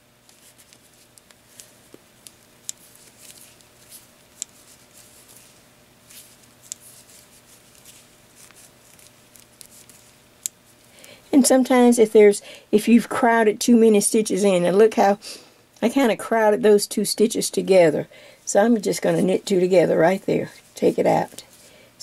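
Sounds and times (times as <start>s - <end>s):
wooden knitting needles clicking: 4.3s - 4.6s.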